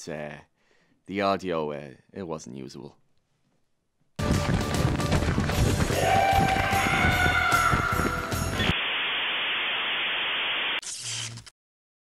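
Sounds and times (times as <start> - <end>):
electronic static hiss: 8.6 - 11.1.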